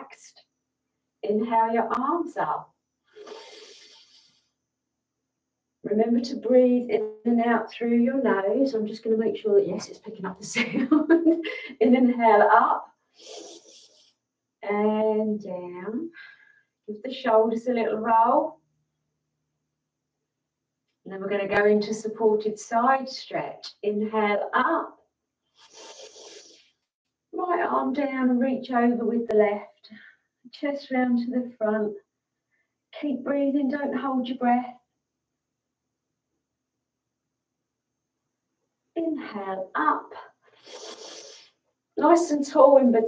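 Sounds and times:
woman breathing in: 3.2s - 4.5s, 16.2s - 16.7s.

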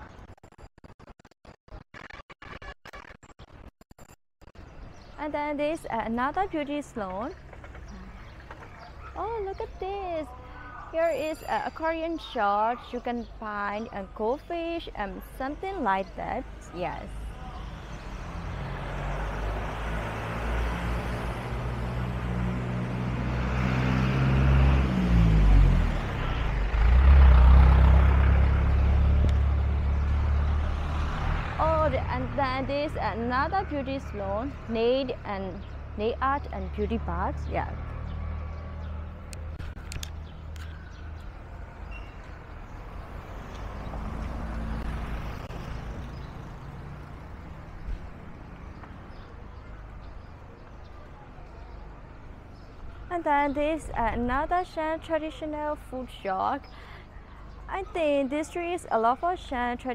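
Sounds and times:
traffic noise: 4.5s - 59.9s
car driving past slowly: 17.2s - 32.4s, 37.0s - 53.0s.

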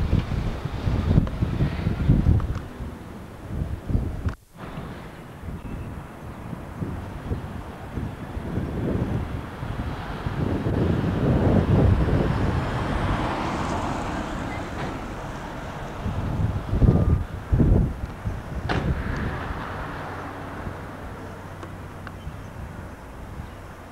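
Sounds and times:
wind buffeting microphone: 0.0s - 23.9s
vehicle passing: 6.2s - 23.9s.

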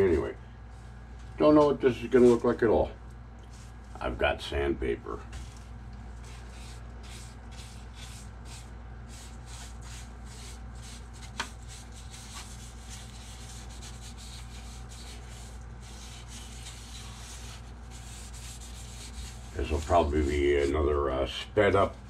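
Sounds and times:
sandpaper rubbing wood: 6.2s - 20.8s.

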